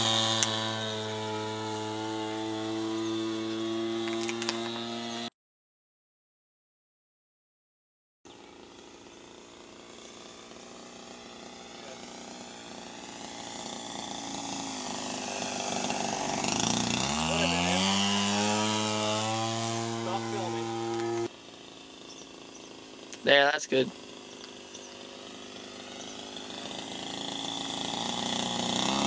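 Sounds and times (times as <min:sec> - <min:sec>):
model plane engine: 0:00.0 - 0:05.3, 0:08.3 - 0:29.0.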